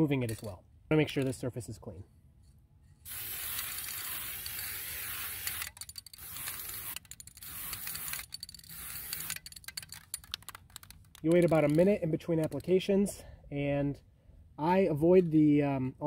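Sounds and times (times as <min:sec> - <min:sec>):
aerosol can spraying: 0:03.0 - 0:09.4.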